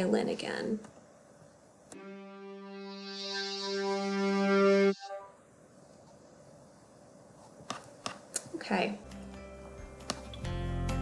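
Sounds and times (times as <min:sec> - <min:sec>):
low sustained violin note: 0:02.0 - 0:05.4.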